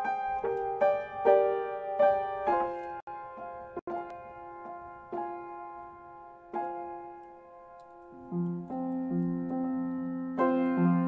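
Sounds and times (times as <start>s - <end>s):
soft piano chords: 0.0s - 11.0s.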